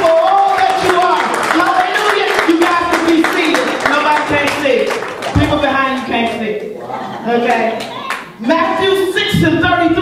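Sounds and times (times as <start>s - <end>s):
hand clapping: 0.0s - 6.1s.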